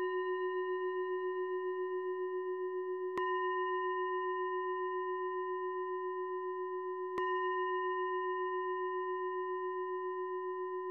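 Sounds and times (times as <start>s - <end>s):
singing bowl ringing: 0.0s - 10.9s.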